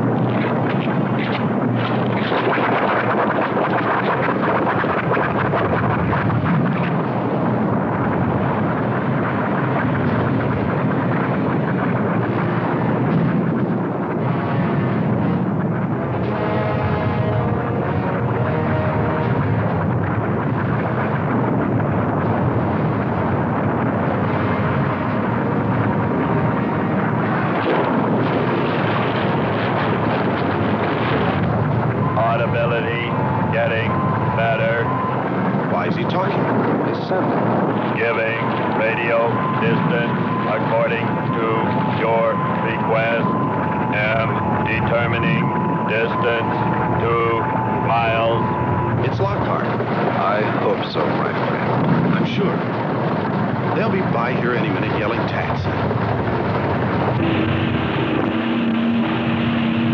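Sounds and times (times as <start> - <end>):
volcano rumbling and hissing: 0.0 - 59.9.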